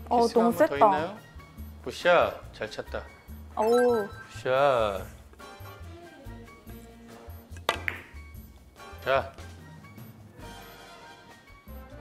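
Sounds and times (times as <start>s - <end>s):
billiard balls clicking: 7.6s - 8.2s.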